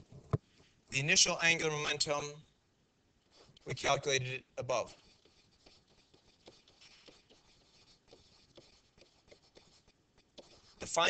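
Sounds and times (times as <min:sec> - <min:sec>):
stylus scratching on writing surface: 0:03.3 - 0:04.0, 0:04.7 - 0:11.0.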